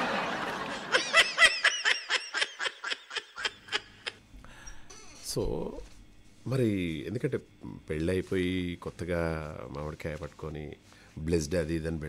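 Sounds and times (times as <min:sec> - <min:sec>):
person laughing: 0:00.0 - 0:04.2.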